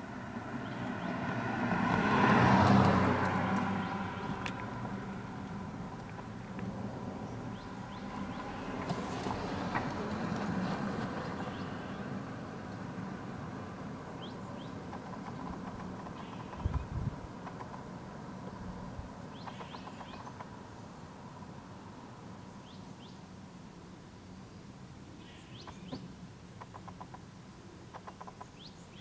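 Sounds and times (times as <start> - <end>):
low rumble and hiss: 3.0 - 19.9, 20.5 - 29.0
faint bird chirps: 16.0 - 16.9, 19.3 - 21.0, 25.1 - 27.0.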